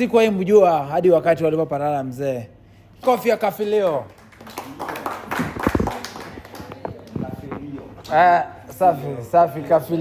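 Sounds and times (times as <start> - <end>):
people clapping: 3.7 - 8.2
person speaking: 5.5 - 9.6.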